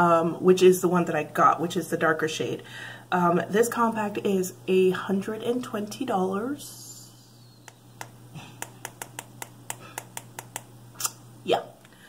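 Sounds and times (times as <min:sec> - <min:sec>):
sharp light tapping clicks: 0:07.6 - 0:10.7.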